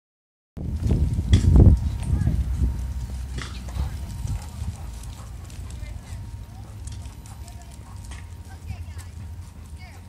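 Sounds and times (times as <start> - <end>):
low rumble on microphone: 0.6 - 10.0.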